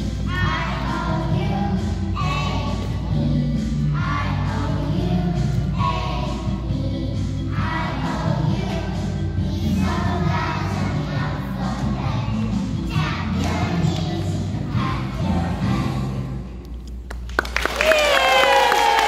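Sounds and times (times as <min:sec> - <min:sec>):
children singing over samba beat: 0:00.0 - 0:16.5
audience applause and cheering: 0:17.1 - 0:19.0.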